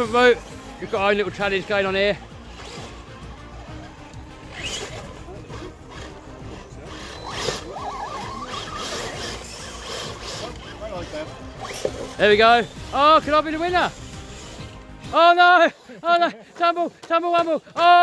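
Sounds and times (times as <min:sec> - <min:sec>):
rc trucks electric motors whining: 0:02.2 - 0:15.2.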